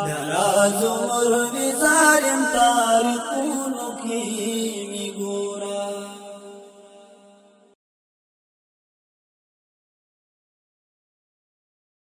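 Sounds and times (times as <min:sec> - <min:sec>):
wordless vocal drone: 0:00.0 - 0:06.9.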